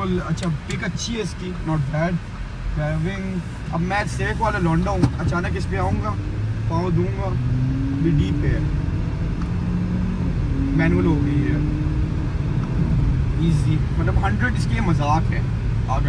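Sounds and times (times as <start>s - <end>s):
road rumble: 0.0s - 16.0s
car engine accelerating: 3.8s - 16.0s.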